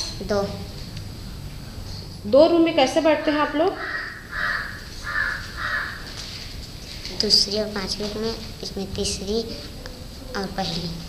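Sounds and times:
crow cawing: 3.4s - 6.5s.

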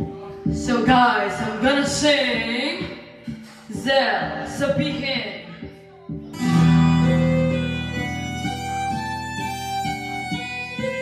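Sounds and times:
instrumental backing track: 0.0s - 11.0s.

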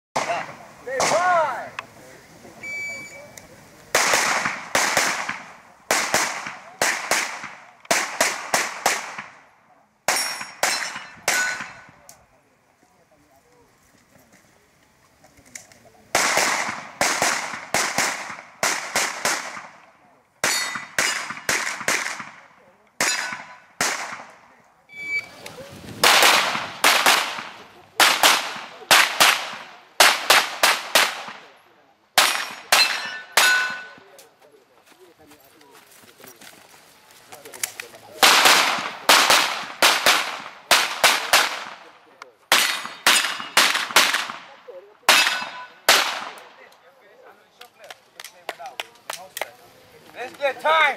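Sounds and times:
handgun shots: 42.5s - 44.4s, 45.1s - 46.4s.

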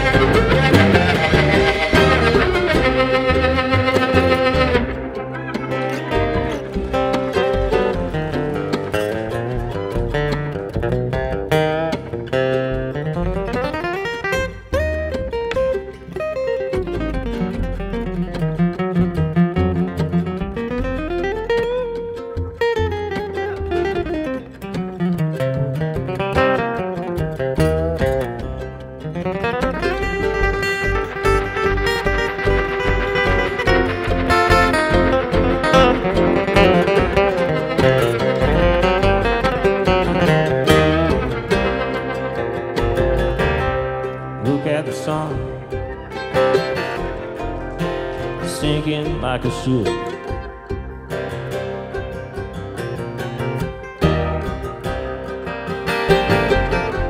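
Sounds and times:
acoustic guitar lead: 0.0s - 57.0s
bluegrass band playing: 0.0s - 57.0s.

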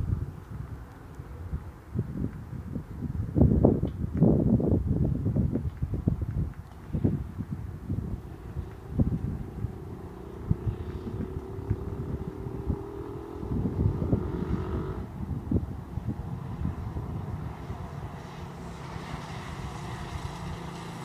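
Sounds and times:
wind buffeting microphone: 0.0s - 21.0s
distant engine drone: 8.0s - 15.2s.

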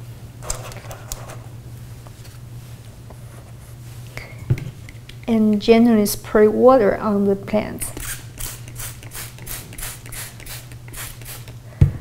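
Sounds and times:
spray bottle spritzes: 8.0s - 11.5s.

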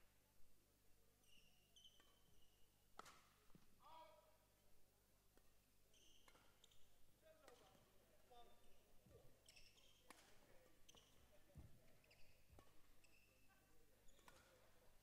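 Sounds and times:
court shoes squeaking: 1.2s - 3.1s, 5.9s - 7.8s, 9.4s - 14.7s
racket hitting shuttlecock: 3.0s - 3.3s, 6.2s - 6.5s, 12.5s - 12.9s, 14.1s - 14.7s.

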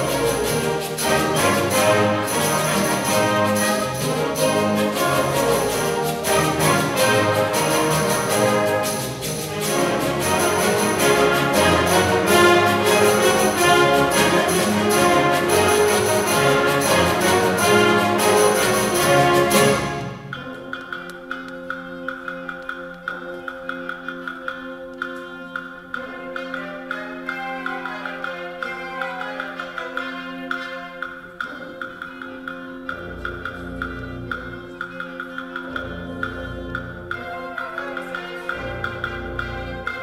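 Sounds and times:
concert band playing held chords: 0.0s - 27.0s
tapping percussion beat: 0.0s - 40.0s.

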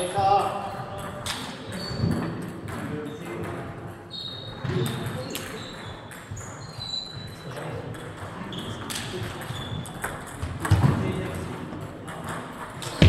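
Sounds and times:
table tennis balls knocking: 7.9s - 11.1s.

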